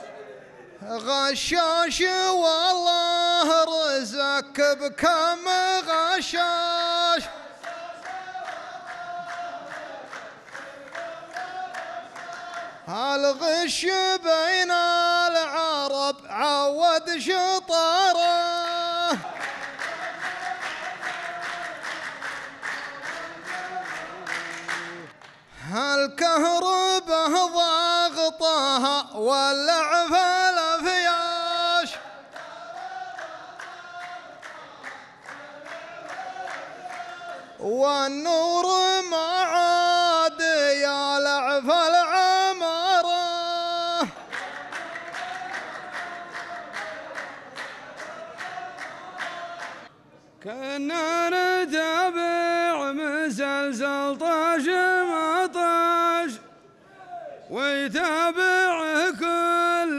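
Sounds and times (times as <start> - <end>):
man's voice: 0.0 - 7.5, 12.7 - 22.2, 22.8 - 32.1, 36.9 - 44.3, 48.5 - 59.9
men chanting together: 0.8 - 49.9
men clapping in unison: 5.4 - 16.0, 17.2 - 27.4, 29.6 - 40.5, 41.2 - 49.9.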